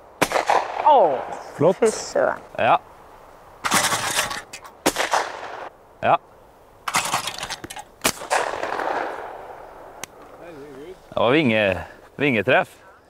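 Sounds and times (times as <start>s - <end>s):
shotgun reports echoing: 0.2s - 1.2s, 3.6s - 5.7s, 8.0s - 9.6s.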